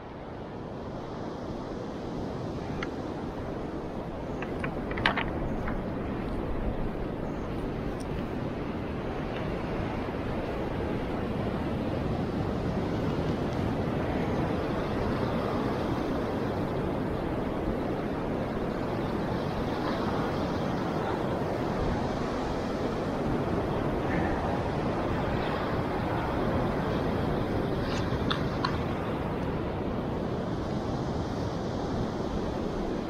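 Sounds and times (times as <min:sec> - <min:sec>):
sea surf on a beach: 0:00.0 - 0:33.0
wind on the microphone: 0:00.0 - 0:33.0.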